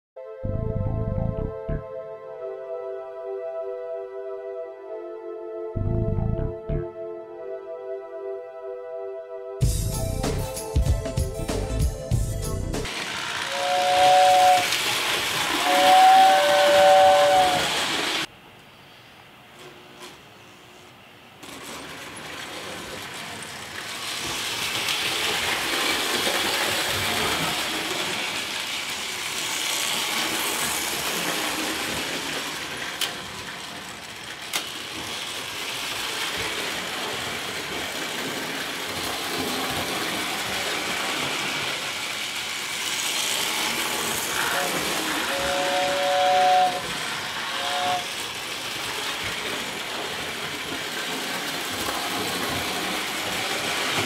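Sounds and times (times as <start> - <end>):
toy train rattling hum: 12.2 - 18.3, 21.4 - 54.0
toy train whistle: 12.8 - 18.3, 24.0 - 54.0.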